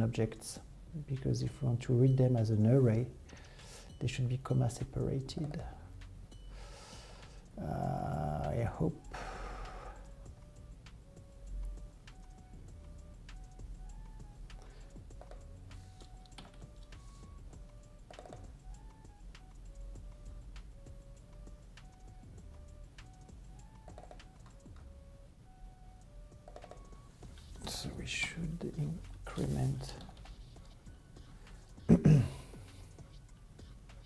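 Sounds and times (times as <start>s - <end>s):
quiet background music: 0.0s - 34.0s
computer keyboard typing: 23.0s - 24.9s, 26.5s - 27.0s.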